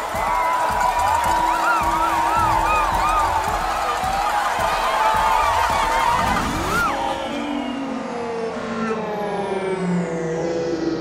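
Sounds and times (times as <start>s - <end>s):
brass marching band playing: 0.0s - 6.9s
crowd cheering and whooping: 0.0s - 9.1s.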